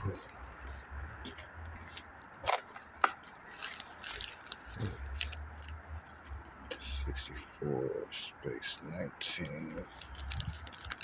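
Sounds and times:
footsteps on wet gravel: 0:00.0 - 0:06.9.

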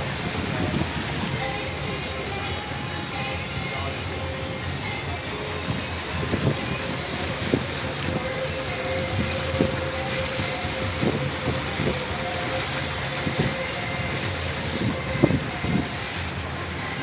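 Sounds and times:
motorboat engine drone: 0:00.0 - 0:17.0
wind on microphone: 0:00.0 - 0:17.0.

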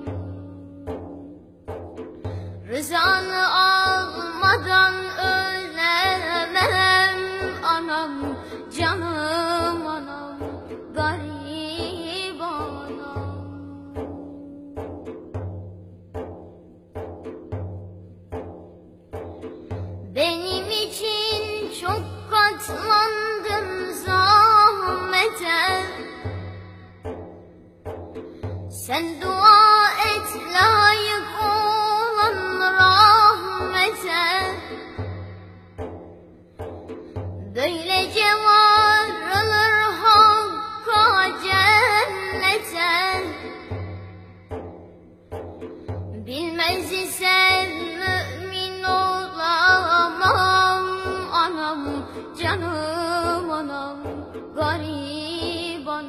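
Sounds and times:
low drum beat: 0:00.0 - 0:56.0.

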